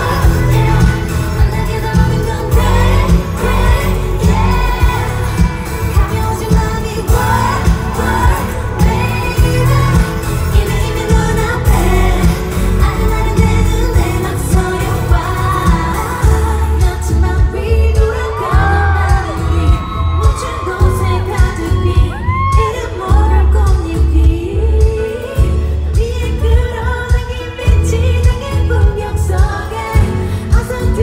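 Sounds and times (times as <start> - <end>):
pop backing track with heavy bass: 0.0 - 31.0
woman singing: 0.0 - 31.0.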